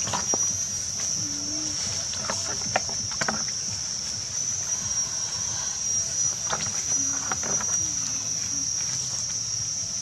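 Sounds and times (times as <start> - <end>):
high-pitched insect drone: 0.0 - 10.0
low rumbling noise: 0.0 - 10.0.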